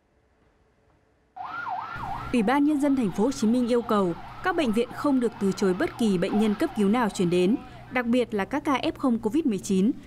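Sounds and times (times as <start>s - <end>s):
ambulance siren: 1.4s - 8.0s.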